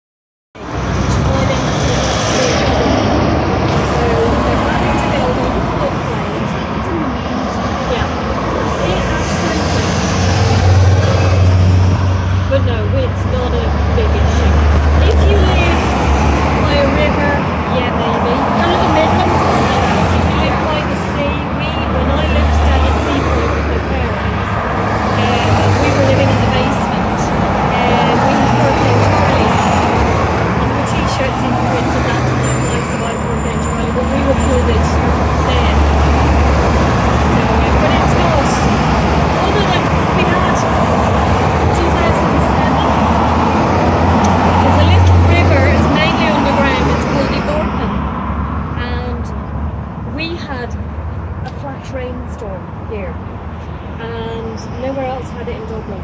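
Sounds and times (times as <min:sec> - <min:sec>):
cars driving past: 0:00.6 - 0:56.0
heavy vehicle engine drone: 0:00.6 - 0:56.0
road traffic: 0:00.6 - 0:56.0.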